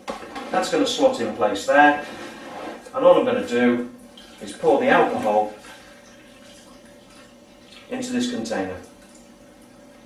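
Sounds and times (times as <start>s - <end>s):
liquid trickling into container: 3.9s - 8.2s, 8.8s - 10.0s.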